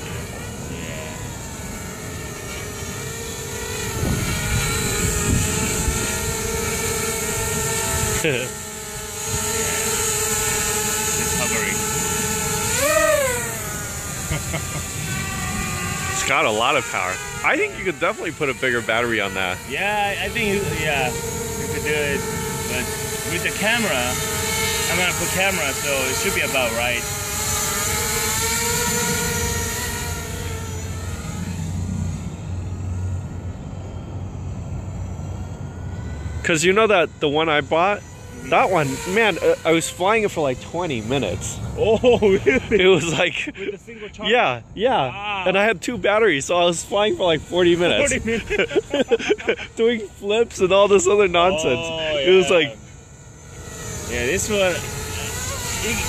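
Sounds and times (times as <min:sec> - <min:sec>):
quadcopter drone whine: 0:00.0 - 0:56.0.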